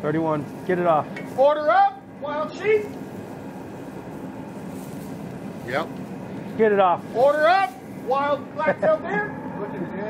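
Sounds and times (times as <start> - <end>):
low rumbling hum: 0.0 - 10.0.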